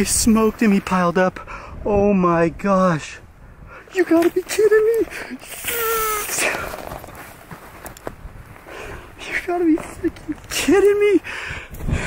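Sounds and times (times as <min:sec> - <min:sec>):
man's drawn-out exclamation: 0:04.5 - 0:06.6
heavy excited breath: 0:08.6 - 0:09.2, 0:11.2 - 0:12.0.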